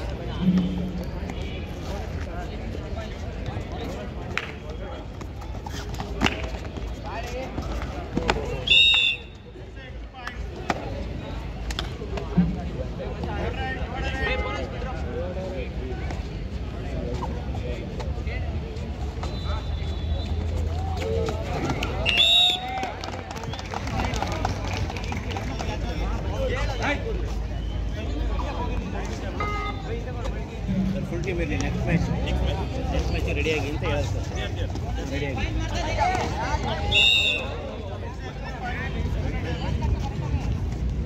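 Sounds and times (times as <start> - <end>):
people shouting and chattering: 0.0 - 41.0
referee's whistle blast: 8.6 - 9.4, 22.0 - 22.6, 36.8 - 37.6.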